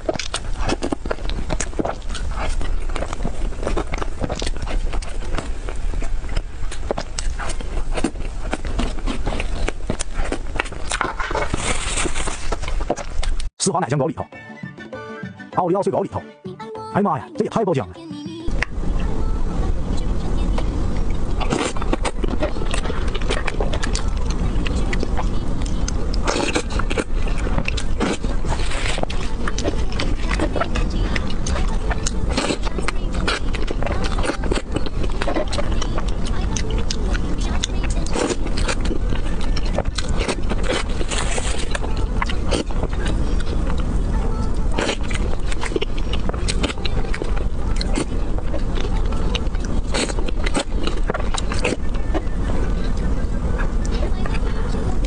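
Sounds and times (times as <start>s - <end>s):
chewing: 0.0s - 13.5s, 20.2s - 55.0s
loud background noise: 17.6s - 55.0s
wet mouth sounds: 21.0s - 54.9s.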